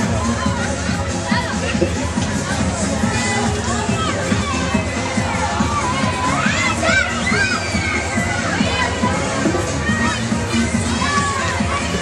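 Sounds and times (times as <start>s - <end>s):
fairground music with bass beat: 0.0s - 12.0s
riders shrieking and shouting: 3.0s - 12.0s.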